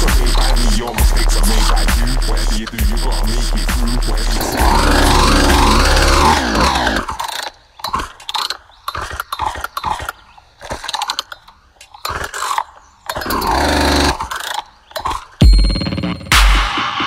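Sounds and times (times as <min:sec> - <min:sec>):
sub-bass: 0:00.0 - 0:06.7
chopped synth sounds: 0:00.0 - 0:10.1.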